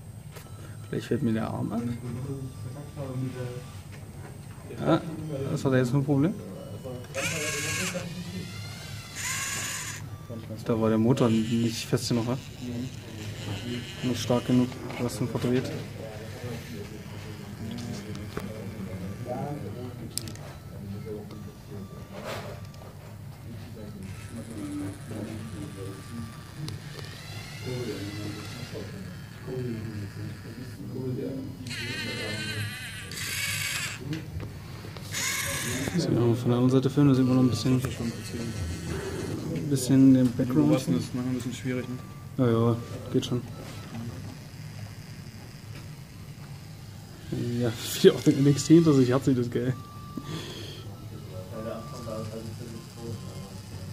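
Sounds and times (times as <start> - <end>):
small motor whirring: 4.7 - 22.9, 23.5 - 53.9.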